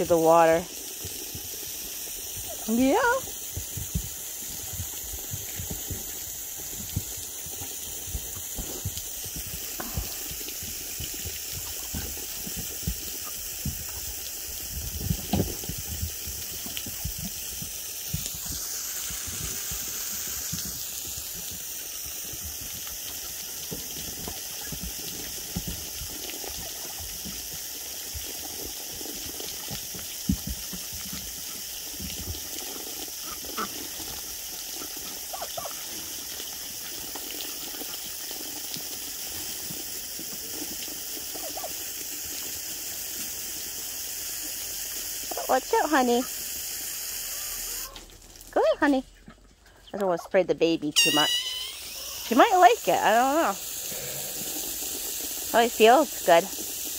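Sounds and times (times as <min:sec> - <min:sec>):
garden hose spraying water: 0:00.0 - 0:49.2, 0:50.0 - 0:56.9.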